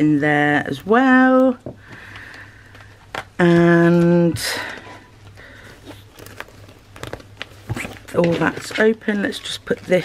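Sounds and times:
stationery rustling: 0:00.0 - 0:10.0.

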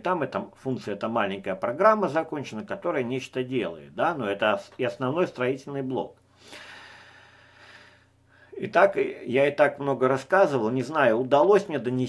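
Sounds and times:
person breathing out: 0:06.3 - 0:08.6.

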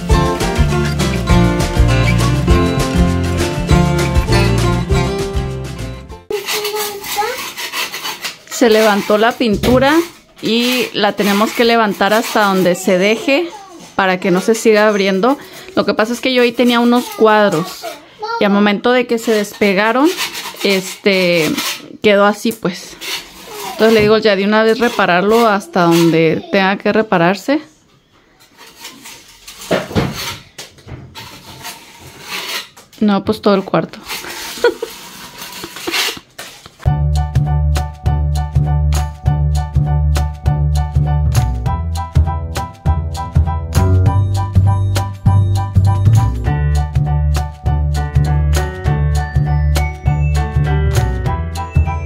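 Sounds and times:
music: 0:00.0 - 0:06.3, 0:36.9 - 0:52.0
putty knife scraping a wall: 0:06.3 - 0:13.2, 0:19.3 - 0:21.9, 0:22.9 - 0:26.3, 0:28.5 - 0:32.9, 0:34.0 - 0:36.6.

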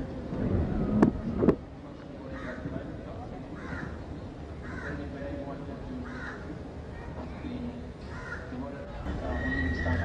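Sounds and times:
crowd murmur: 0:00.0 - 0:10.0
crows cawing: 0:03.6 - 0:04.0, 0:04.6 - 0:05.1, 0:06.0 - 0:06.5, 0:08.1 - 0:08.6.

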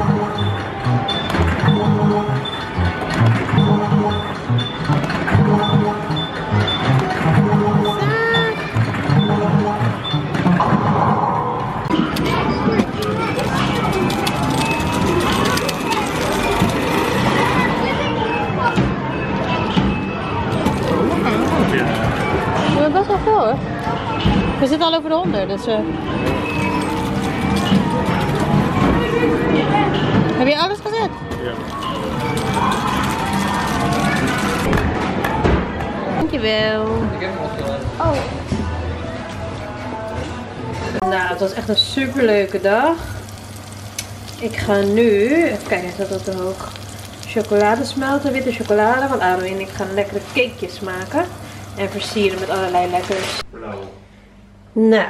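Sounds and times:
arcade game music: 0:00.0 - 0:10.4
electronic game effects: 0:00.0 - 0:17.9
background chatter: 0:11.4 - 0:54.0
ticket counter rapid clicking: 0:12.1 - 0:17.9, 0:20.5 - 0:22.4, 0:26.3 - 0:29.3, 0:30.5 - 0:34.8.

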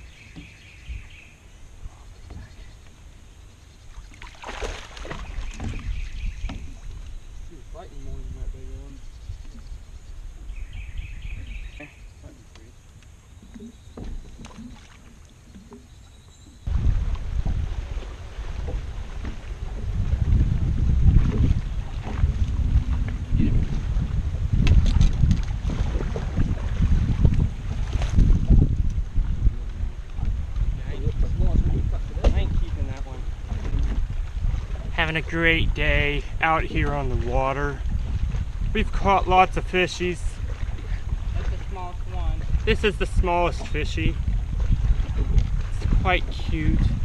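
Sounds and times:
wind buffeting microphone: 0:00.0 - 0:03.2, 0:03.9 - 0:14.8, 0:16.4 - 0:47.0
water slapping hull: 0:00.0 - 0:47.0.

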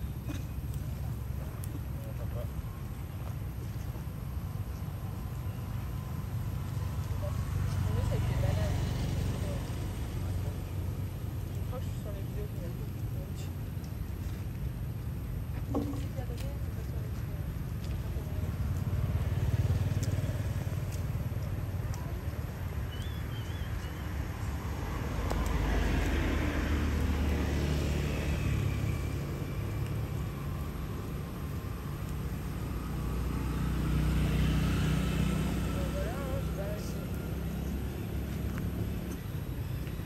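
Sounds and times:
low traffic rumble: 0:00.0 - 0:40.0
motor vehicles passing by: 0:00.0 - 0:40.0.

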